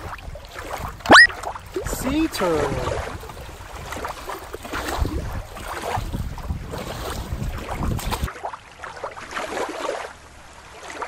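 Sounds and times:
shallow water washing: 0.0s - 11.0s
wind buffeting microphone: 1.6s - 8.3s.

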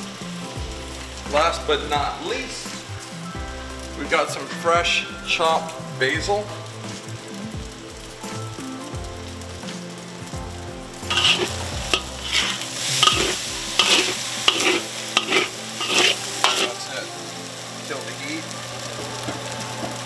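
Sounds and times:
rice sizzling in a wok: 0.0s - 20.0s
spatula scraping a wok: 11.0s - 16.9s.

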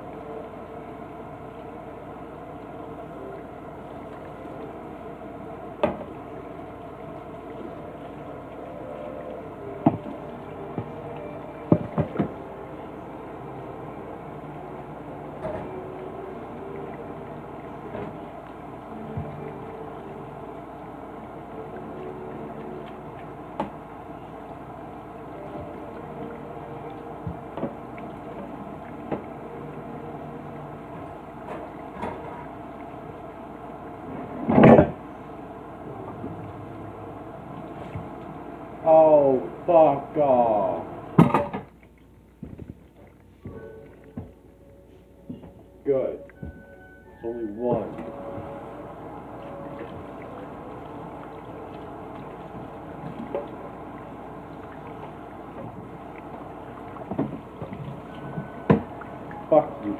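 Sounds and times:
water running from faucet: 0.0s - 34.1s, 46.4s - 59.9s.

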